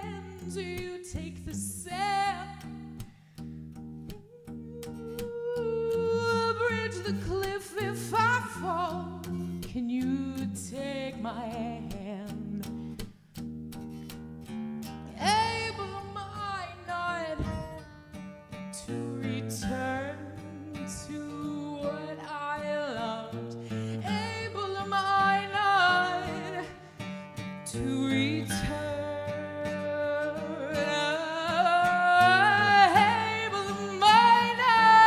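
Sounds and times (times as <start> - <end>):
woman singing with vibrato: 0.0 - 2.9, 4.1 - 12.8, 15.1 - 17.9, 18.7 - 27.0, 27.6 - 35.0
guitar accompaniment: 0.0 - 35.0.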